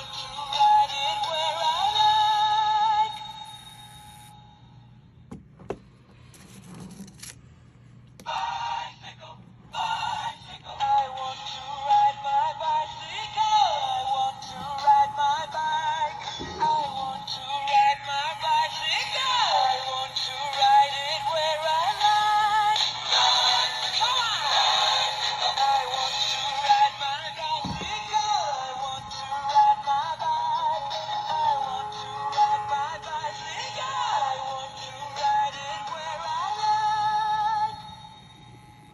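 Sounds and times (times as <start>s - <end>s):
electronic toy song from small speaker: 0.0s - 4.3s, 9.8s - 38.2s
steady low hum: 0.0s - 38.9s.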